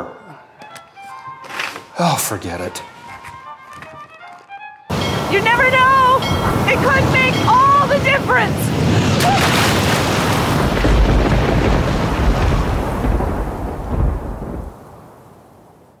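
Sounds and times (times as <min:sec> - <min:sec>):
wind and sea spray rush: 0:05.0 - 0:15.8.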